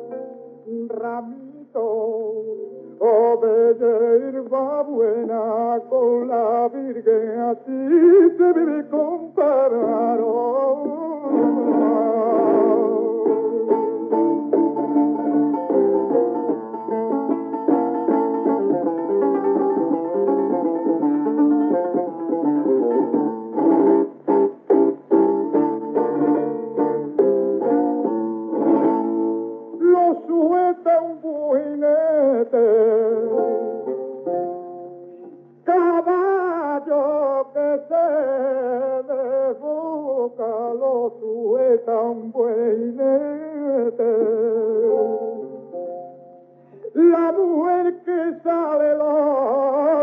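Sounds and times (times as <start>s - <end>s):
man singing ornamented line: 0.0s - 16.7s, 29.7s - 33.9s, 35.6s - 45.8s, 46.8s - 50.0s
flamenco guitar strumming: 0.0s - 50.0s.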